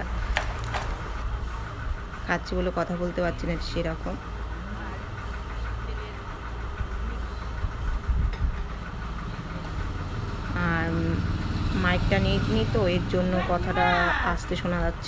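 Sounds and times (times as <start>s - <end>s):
low mechanical hum: 0.0s - 15.0s
woman's voice: 2.2s - 4.3s, 10.5s - 15.0s.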